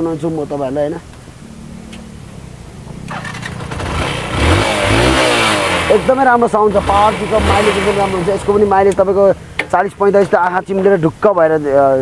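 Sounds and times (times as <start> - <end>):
motorcycle engine revving: 1.2 - 9.7.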